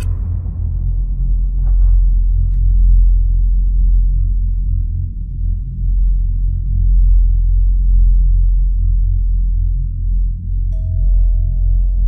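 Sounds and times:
deep low rumbling drone: 0:00.0 - 0:12.0.

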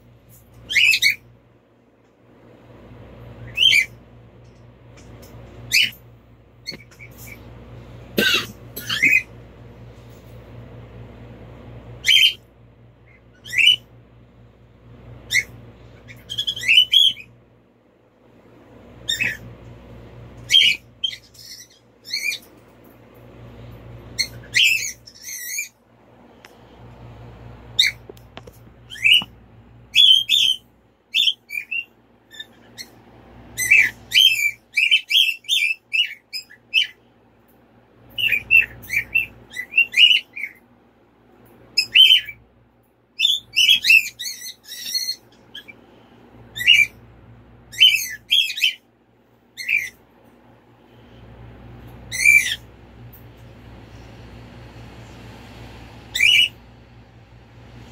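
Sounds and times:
bird chirping: 0:00.6 - 0:01.3, 0:03.4 - 0:06.0, 0:06.6 - 0:07.5, 0:08.8 - 0:09.3, 0:12.0 - 0:13.9, 0:15.2 - 0:17.4, 0:19.0 - 0:19.5, 0:20.4 - 0:22.5, 0:24.1 - 0:25.8, 0:27.8 - 0:28.2, 0:28.8 - 0:33.0, 0:33.6 - 0:37.0, 0:38.1 - 0:40.6, 0:41.7 - 0:42.4, 0:43.2 - 0:45.8, 0:46.5 - 0:47.0, 0:47.7 - 0:48.9, 0:49.6 - 0:50.0, 0:52.1 - 0:52.7, 0:56.1 - 0:56.6
soft low rumble: 0:50.2 - 0:57.9.

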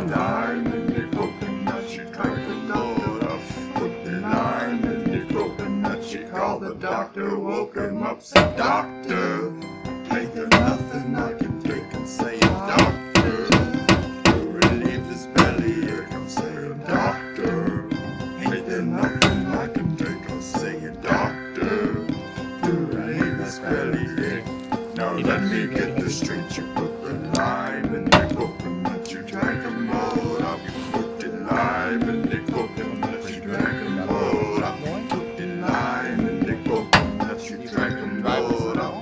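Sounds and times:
guitar: 0:00.0 - 0:39.0
person singing: 0:00.0 - 0:39.0
coconut thunking on hard edge: 0:08.4 - 0:08.9, 0:10.5 - 0:10.9, 0:12.4 - 0:15.8, 0:19.2 - 0:19.6, 0:28.1 - 0:28.6, 0:36.9 - 0:37.3.

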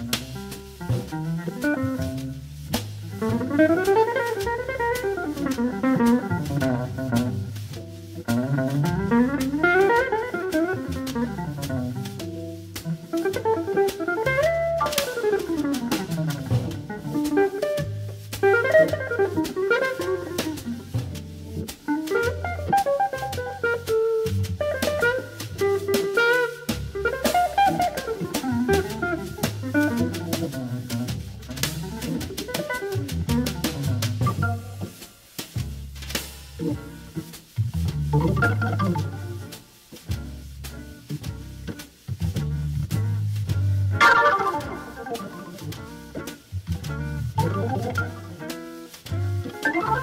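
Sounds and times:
deep organ bass notes: 0:33.0 - 0:35.0, 0:37.8 - 0:39.6, 0:42.3 - 0:48.5
organ playing: 0:38.2 - 0:39.6, 0:44.0 - 0:46.3, 0:47.3 - 0:48.8, 0:49.5 - 0:50.0.

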